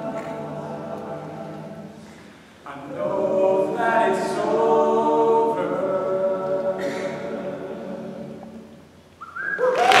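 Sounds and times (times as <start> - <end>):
male a cappella chord: 0.0 - 8.7
audience whistles cheers and applause: 9.2 - 10.0.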